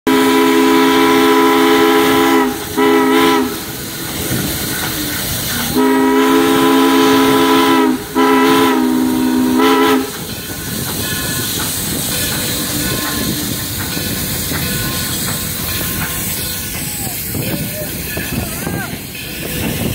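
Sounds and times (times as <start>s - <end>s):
chime steam whistle blasts: 0.1s - 3.9s, 4.8s - 19.9s
steam locomotive running: 0.1s - 19.9s
steam hissing: 0.2s - 19.9s.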